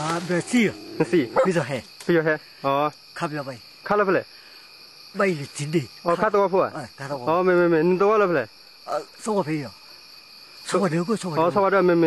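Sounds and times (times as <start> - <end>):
old man speaking: 0.0 - 4.2, 5.2 - 9.7, 10.7 - 12.0
forest insects chirring: 0.0 - 12.0.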